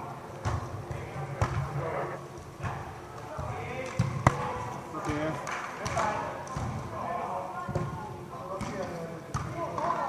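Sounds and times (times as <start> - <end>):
echoing voices and chatter: 0.0 - 10.0.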